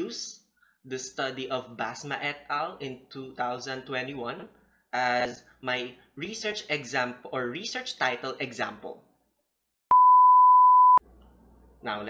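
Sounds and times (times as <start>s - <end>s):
steady pure test tone beep: 9.9s - 11.0s.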